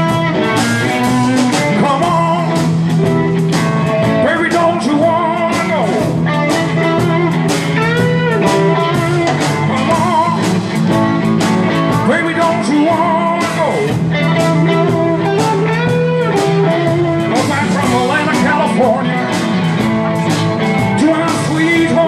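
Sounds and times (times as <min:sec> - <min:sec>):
bent gliding guitar notes: 0:00.0 - 0:22.0
live blues band playing: 0:00.0 - 0:22.0.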